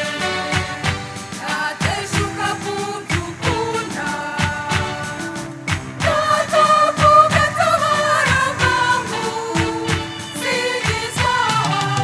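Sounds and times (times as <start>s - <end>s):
choir singing in harmony: 0.0s - 12.0s
steady beat: 0.0s - 12.0s.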